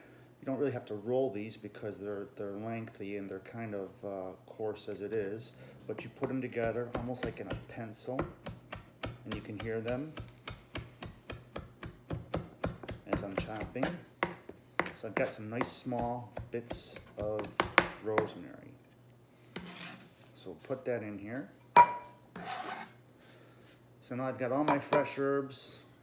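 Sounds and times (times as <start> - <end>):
knife chopping on cutting board: 6.2 - 18.4
knife blade scraping: 19.6 - 20.1, 22.4 - 23.0.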